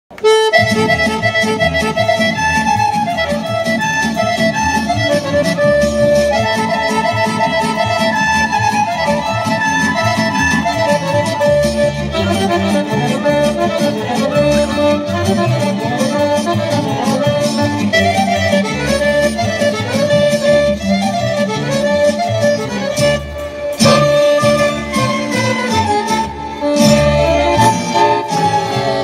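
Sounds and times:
folk dance music: 0.1 - 29.0.

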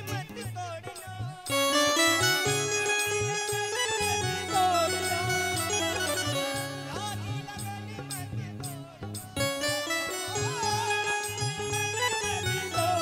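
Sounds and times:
electronic keyboard melody: 1.4 - 13.0.

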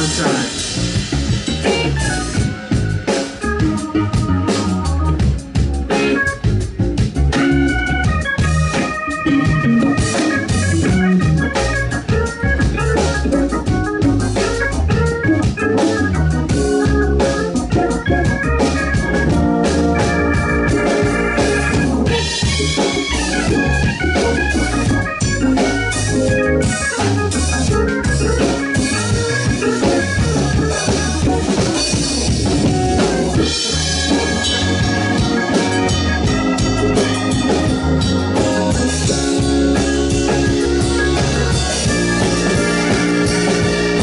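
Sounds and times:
drum kit: 0.0 - 44.0
electric bass: 0.0 - 44.0
organ solo in quick runs: 0.0 - 44.0.

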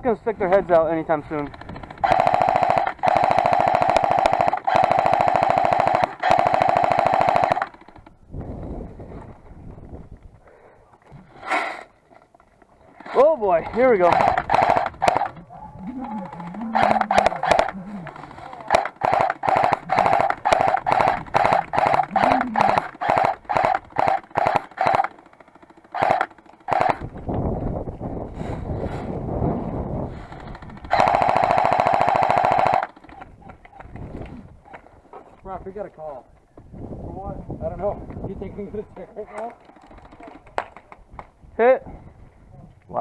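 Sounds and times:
airsoft gun firing bursts: 1.3 - 8.2, 13.0 - 15.4, 16.0 - 27.3, 30.1 - 33.7.

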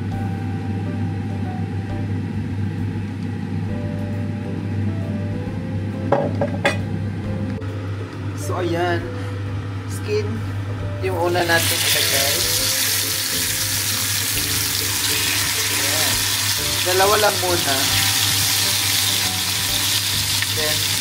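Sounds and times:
steady low hum: 0.0 - 20.5
quiet background music: 0.0 - 21.0
glass bottle knocking on worktop: 6.1 - 6.8.

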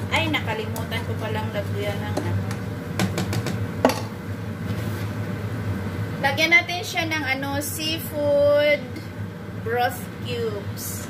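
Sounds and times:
steady low hum: 0.0 - 11.0
rice paddle knocking on pots: 2.1 - 4.1.

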